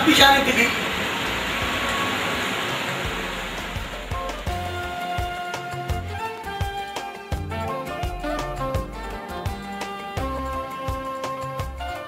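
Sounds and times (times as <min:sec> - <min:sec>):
steady hiss: 0:00.0 - 0:06.0.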